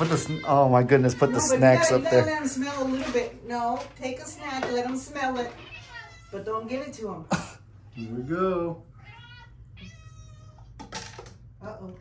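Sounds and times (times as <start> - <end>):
cat meowing: 5.5 - 6.6, 8.0 - 10.8.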